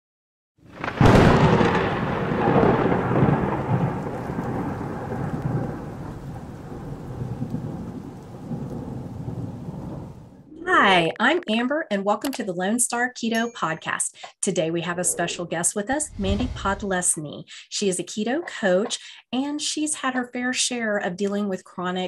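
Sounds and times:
thunder crack and rumble: 0.7 - 10.5, 16.0 - 17.1.

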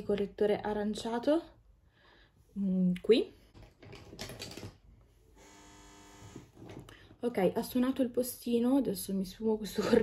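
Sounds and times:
intercom buzzer: 5.4 - 6.5.

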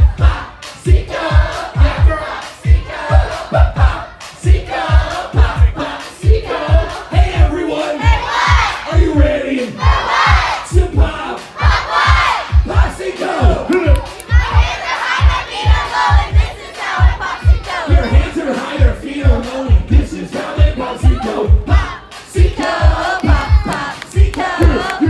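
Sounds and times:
loud amplified concert music: 0.0 - 25.0
children shouting and chanting: 11.6 - 12.6, 14.0 - 18.6.

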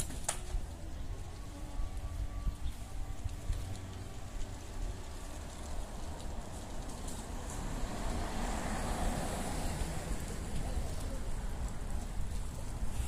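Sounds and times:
car driving past: 3.8 - 10.7.

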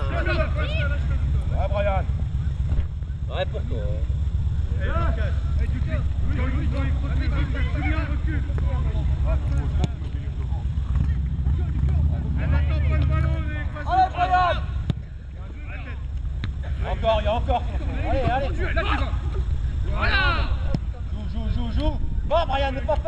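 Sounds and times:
distant shouting voices: 0.0 - 23.0
wind rumbling on microphone: 16.2 - 23.0.

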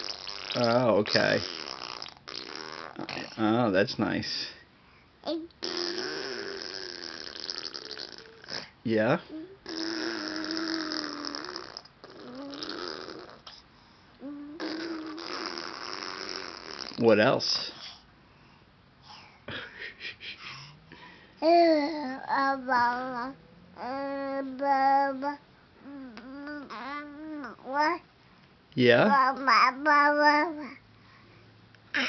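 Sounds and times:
baby blowing raspberries: 0.0 - 3.4, 5.6 - 8.8, 9.6 - 13.6, 14.2 - 17.0
baby cooing: 5.2 - 8.7, 9.3 - 13.6, 14.2 - 17.0, 21.4 - 28.0, 29.0 - 30.8.

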